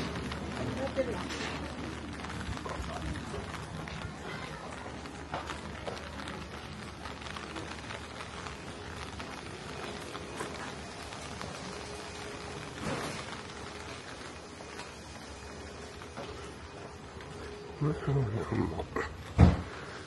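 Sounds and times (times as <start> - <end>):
light rain on wet street: 0.0 - 20.0
raindrop ticks: 0.0 - 20.0.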